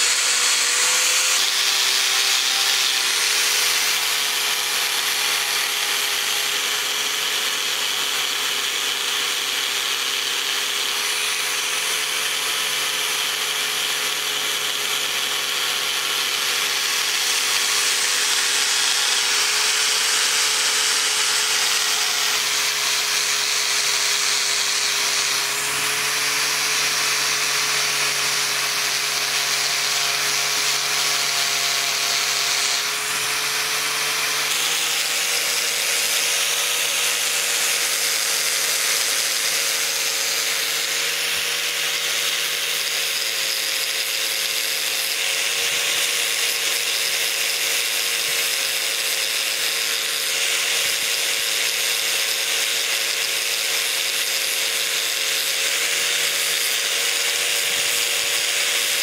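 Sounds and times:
polishing wheel hissing on metal: 0:00.0 - 0:03.2
angle grinder motor whine: 0:00.0 - 0:59.0.

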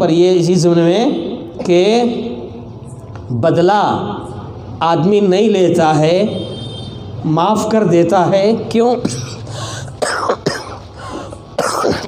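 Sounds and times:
man coughing: 0:09.0 - 0:12.0
breath: 0:09.4 - 0:10.0, 0:11.0 - 0:11.4.

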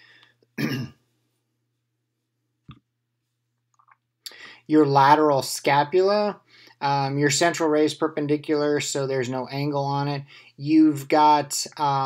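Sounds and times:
faint breath: 0:00.0 - 0:00.5, 0:04.3 - 0:04.7, 0:06.4 - 0:06.8, 0:10.3 - 0:10.6
person clearing throat: 0:00.6 - 0:01.0.

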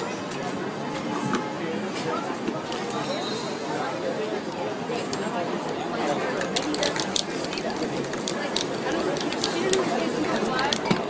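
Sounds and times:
people talking: 0:00.0 - 0:11.0
spray-paint can hissing: 0:06.6 - 0:10.8.

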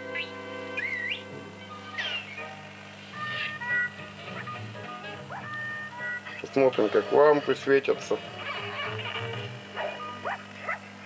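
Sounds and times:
cartoon music: 0:00.0 - 0:02.6, 0:03.2 - 0:07.7, 0:08.4 - 0:10.4
steady low hum: 0:00.0 - 0:11.0.

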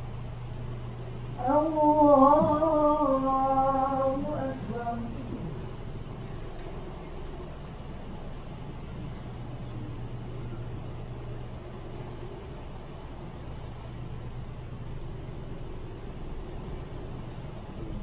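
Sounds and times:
fans and ventilation hum: 0:00.0 - 0:18.0.

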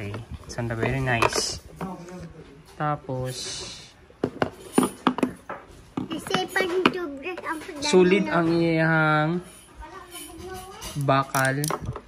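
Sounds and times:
child's voice: 0:06.0 - 0:08.5, 0:09.8 - 0:11.0.

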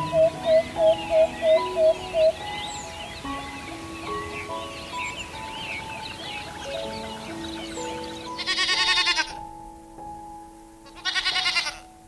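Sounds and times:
soft background music: 0:00.0 - 0:12.0
goat bleating: 0:08.4 - 0:09.4, 0:10.9 - 0:11.8.

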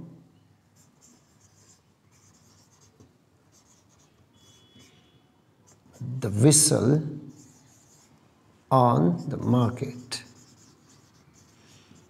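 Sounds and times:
marker writing on whiteboard: 0:00.8 - 0:06.1, 0:07.3 - 0:08.2, 0:09.1 - 0:12.0
thin marker squeak: 0:03.9 - 0:05.2.

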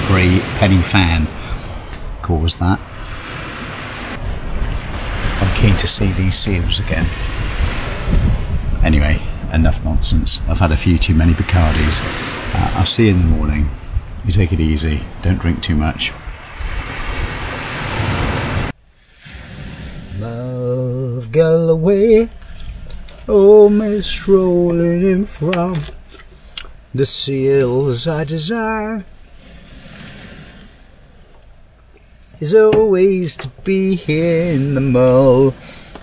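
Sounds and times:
steady rushing noise: 0:00.0 - 0:20.6
man singing: 0:20.1 - 0:22.4, 0:23.3 - 0:26.0, 0:27.0 - 0:29.1, 0:32.4 - 0:35.6.

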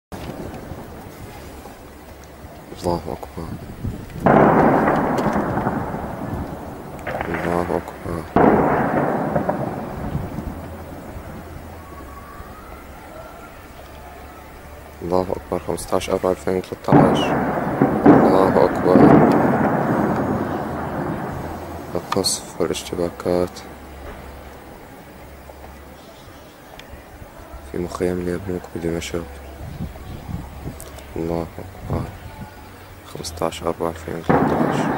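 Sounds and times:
long rumble: 0:00.2 - 0:15.1, 0:16.9 - 0:25.8
shell explosion boom: 0:02.8 - 0:12.2, 0:16.6 - 0:24.5, 0:34.3 - 0:34.9.

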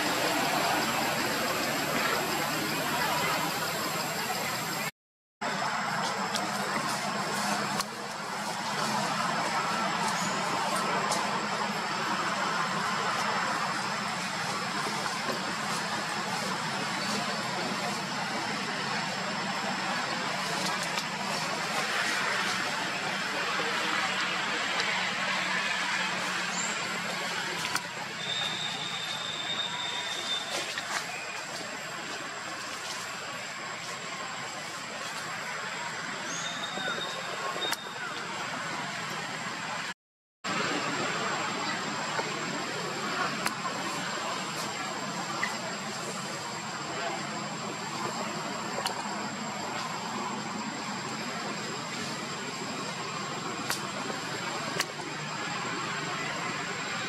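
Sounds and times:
hiss-like outdoor noise: 0:00.0 - 0:39.9, 0:40.5 - 0:57.0
whistle-like tone: 0:28.0 - 0:31.5, 0:36.3 - 0:38.1.

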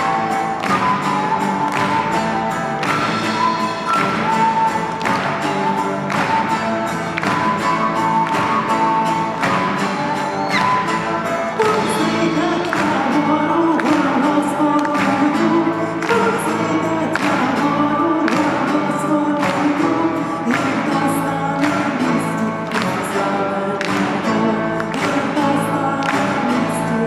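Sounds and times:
acoustic guitars with steady beat: 0:00.0 - 0:27.0
person singing: 0:00.0 - 0:27.0.

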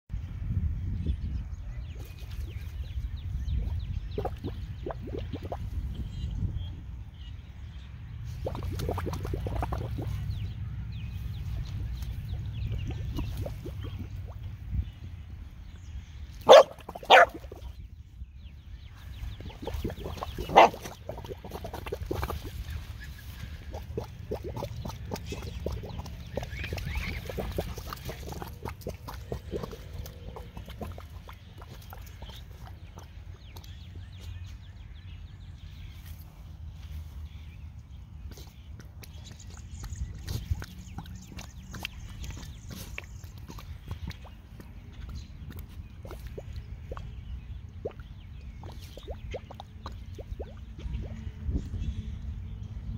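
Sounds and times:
water bubbling: 0:03.4 - 0:06.3, 0:08.3 - 0:10.6, 0:11.9 - 0:14.9, 0:16.4 - 0:17.8, 0:19.1 - 0:33.8, 0:38.8 - 0:51.4
dog barking: 0:16.5 - 0:17.4, 0:20.5 - 0:20.8
low rumble: 0:17.4 - 0:52.9.

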